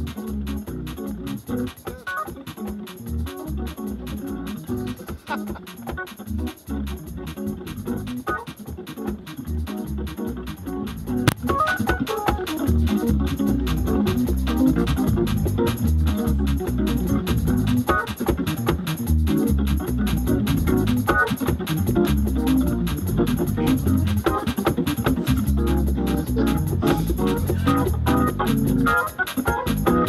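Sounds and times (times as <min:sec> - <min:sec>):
organ playing gospel chords: 0:00.0 - 0:30.0
ticking beat: 0:00.0 - 0:30.0.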